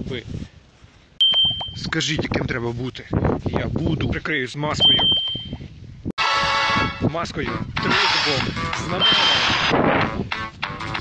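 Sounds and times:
short high ding: 0:01.2 - 0:01.8.

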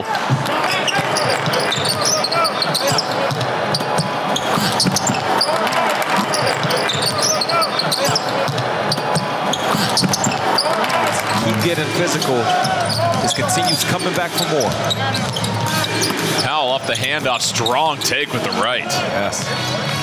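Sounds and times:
arena noise: 0:00.0 - 0:20.0
indistinct voices: 0:00.0 - 0:20.0.

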